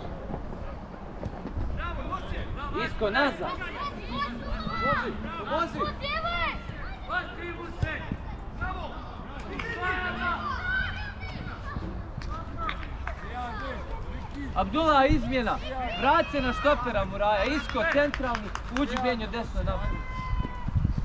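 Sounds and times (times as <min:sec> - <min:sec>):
children shouting: 0:09.7 - 0:11.9.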